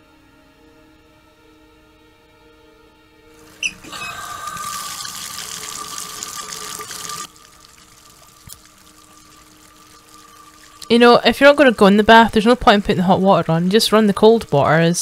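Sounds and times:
bath tap turned on: 3.4 - 14.8
water running into bath: 3.4 - 15.0
low film score drone: 7.1 - 14.1.

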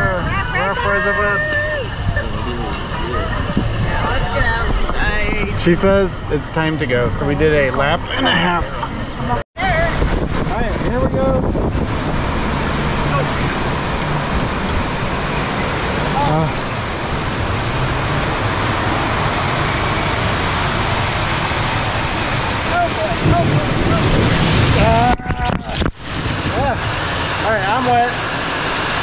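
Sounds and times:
voices and laughter: 0.0 - 5.4, 7.6 - 9.4
rushing water on water slide: 0.0 - 29.0
waterfalls pouring: 0.0 - 29.0
water splashing on microphone: 8.8 - 29.0.

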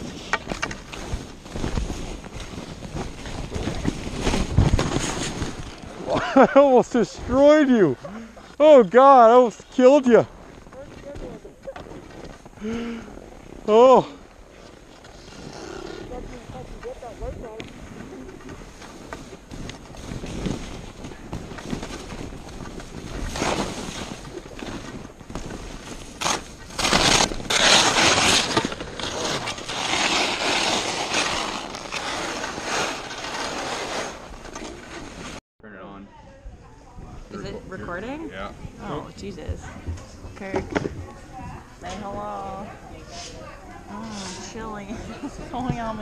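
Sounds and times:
skis scraping over snow: 0.0 - 35.4.

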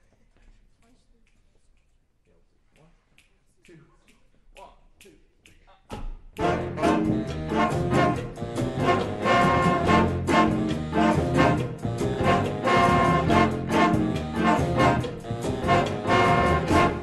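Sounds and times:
jazz big band cha-cha: 6.4 - 17.0.

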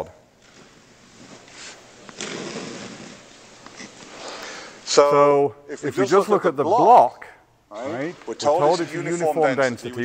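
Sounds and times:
man breathing and sniffing: 1.3 - 4.9.

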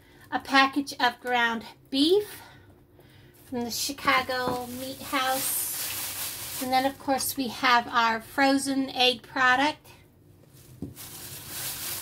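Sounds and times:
plastic bags rustling: 3.9 - 7.4, 10.4 - 12.0.

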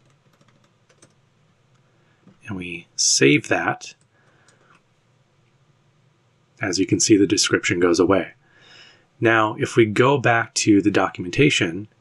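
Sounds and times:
keyboard typing: 0.0 - 1.2, 4.0 - 4.8.

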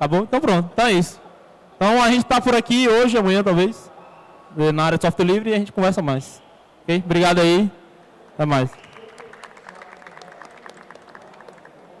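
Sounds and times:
audience applause: 8.7 - 12.0.

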